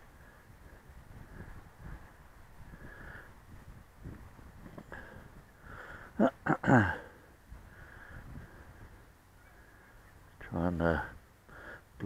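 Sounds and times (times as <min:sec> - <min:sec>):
wind buffeting microphone: 0:00.0 - 0:06.2, 0:07.4 - 0:09.8.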